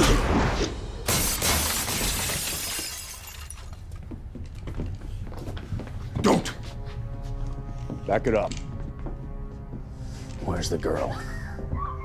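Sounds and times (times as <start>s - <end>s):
glass shattering: 1.1s - 3.8s.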